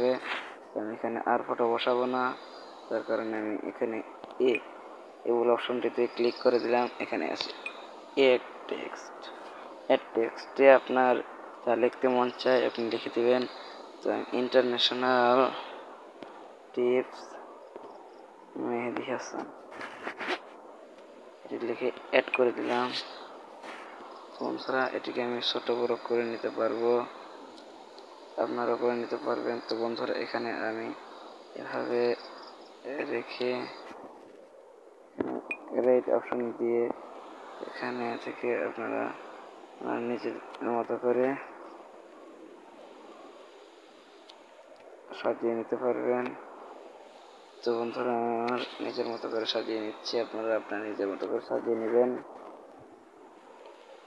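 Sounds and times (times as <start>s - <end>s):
person speaking: 0.0s - 15.8s, 18.5s - 20.4s, 21.4s - 27.2s, 28.4s - 33.9s, 35.2s - 37.0s, 37.6s - 41.6s, 47.6s - 52.3s
faint high-pitched whine: 0.0s - 54.0s.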